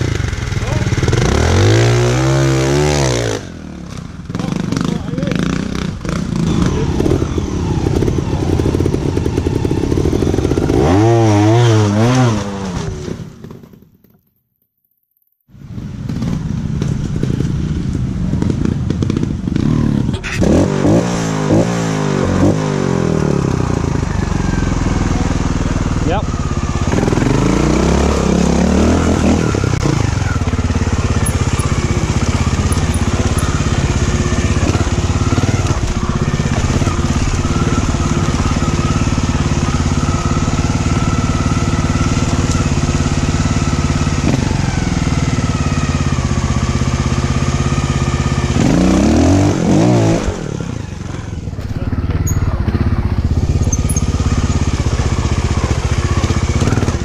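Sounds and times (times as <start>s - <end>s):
motorcycle engine revving: 0.0s - 13.8s, 15.6s - 57.0s.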